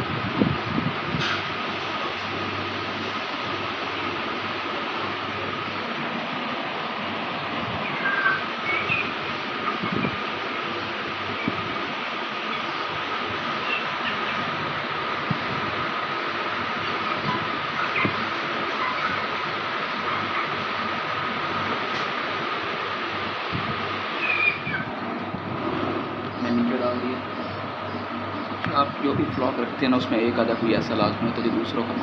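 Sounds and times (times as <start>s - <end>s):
machine whirring hum: 0.0s - 32.0s
chicks chirping: 7.3s - 15.6s, 16.7s - 21.5s, 24.2s - 25.0s, 26.2s - 32.0s.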